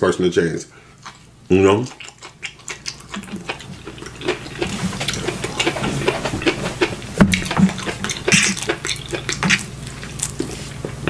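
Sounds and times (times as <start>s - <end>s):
person chewing: 1.0s - 11.0s
mouth smacks and clicks: 1.9s - 10.6s.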